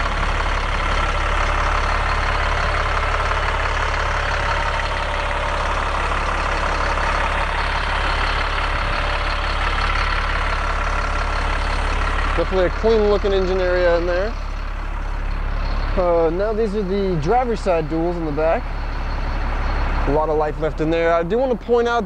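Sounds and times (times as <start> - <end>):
diesel engine idling: 0.0 - 22.0.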